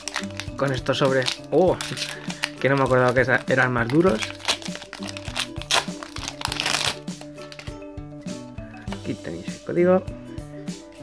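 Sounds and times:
foil pack rustling and crinkling: 0:00.0 - 0:07.8
background music with steady beat: 0:00.0 - 0:11.0.

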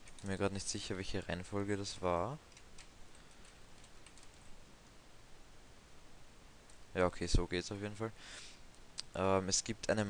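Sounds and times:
keyboard typing: 0:00.0 - 0:00.3, 0:02.5 - 0:04.5
low steady hiss: 0:00.0 - 0:10.0.

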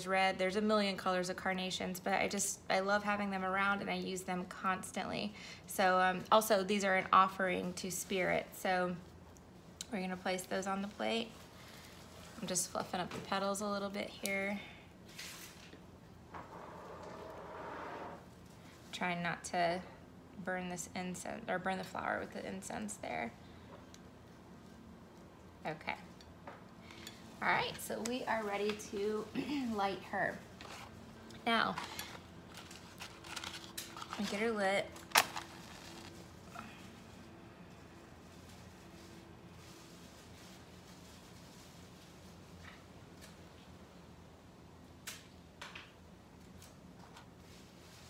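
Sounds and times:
flower petals rustling in hand: 0:07.0 - 0:14.2, 0:27.2 - 0:43.5, 0:46.4 - 0:48.0.

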